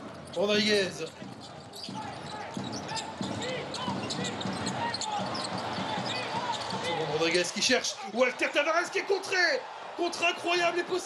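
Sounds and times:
arena crowd noise: 0.0 - 11.0
sneakers squeaking on floor: 0.1 - 0.4, 1.0 - 7.1.

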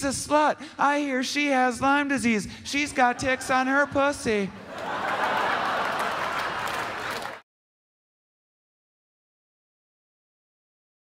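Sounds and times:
audience laughing: 2.9 - 7.4
audience applauding: 4.6 - 7.4.

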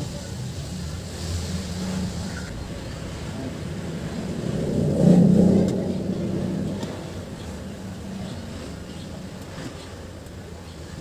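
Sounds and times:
steady low hum: 0.2 - 11.0
motor vehicle engine passing: 1.1 - 9.8.

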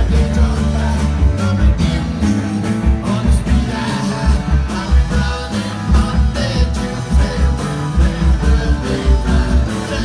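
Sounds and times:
bass guitar: 0.0 - 10.0
drums beating: 0.0 - 10.0
electric guitars: 0.0 - 10.0
person singing into a microphone: 0.0 - 10.0.

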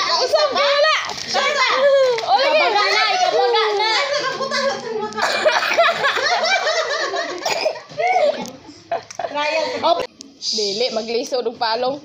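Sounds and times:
children calling out: 0.0 - 5.6.

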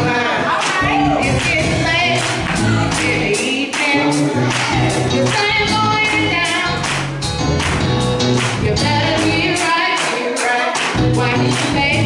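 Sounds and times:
women's vocal group singing: 0.0 - 6.8, 8.6 - 12.0
bass notes: 0.0 - 9.6, 11.0 - 12.0
drum beat: 0.0 - 12.0.

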